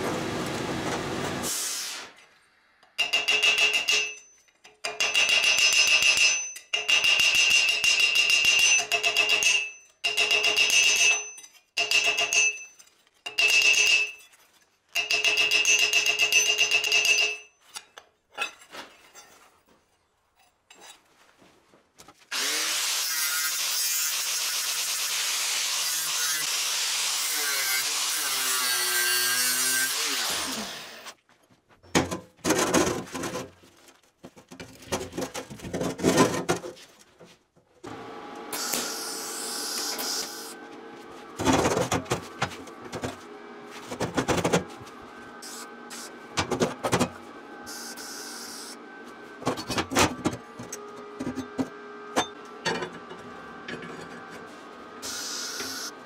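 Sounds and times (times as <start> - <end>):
power tool working steel: 22.3 - 31.2, 37.9 - 41.5, 44.7 - 56.0.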